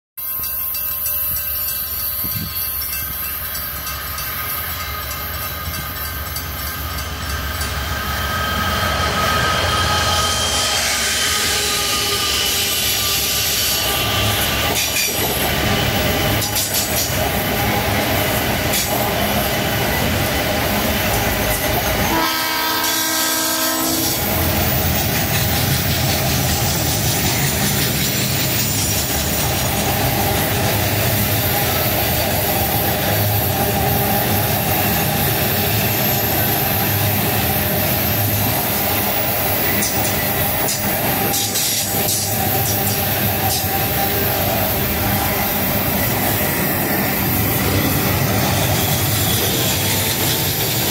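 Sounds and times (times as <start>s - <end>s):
steel wheels on rails: 0.2s - 50.9s
train horn: 9.5s - 14.8s, 21.4s - 24.5s.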